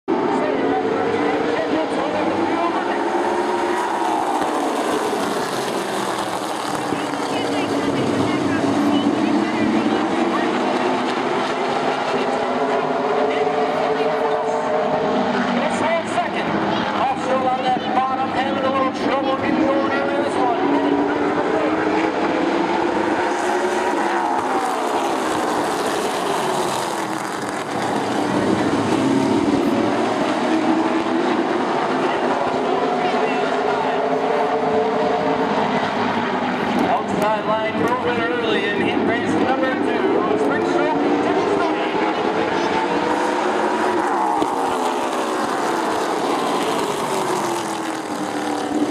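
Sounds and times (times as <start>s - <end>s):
race car engines revving: 0.1s - 48.9s.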